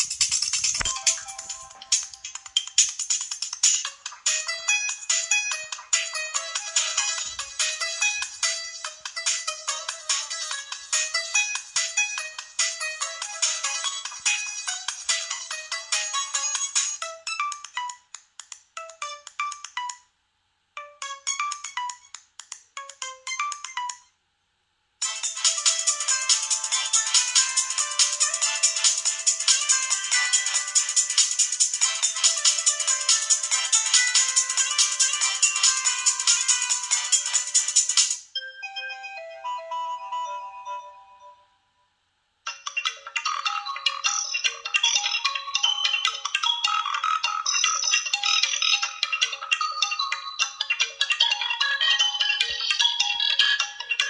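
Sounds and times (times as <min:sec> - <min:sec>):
phone ringtone melodies: 0:00.0 - 0:02.9, 0:04.2 - 0:17.6, 0:25.0 - 0:37.8, 0:38.4 - 0:41.6, 0:42.5 - 0:54.0.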